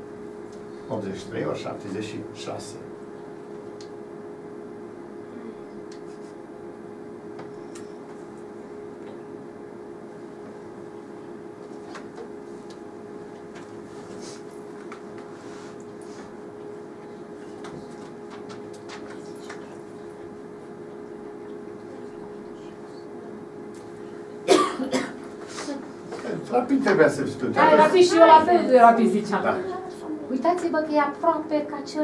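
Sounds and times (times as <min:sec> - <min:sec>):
person coughing: 0:24.4 - 0:25.7.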